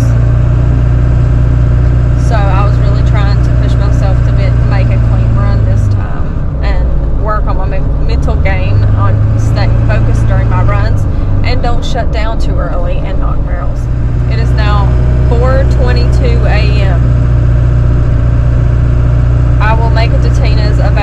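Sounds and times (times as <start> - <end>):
engine and road drone: 0.0 - 21.0.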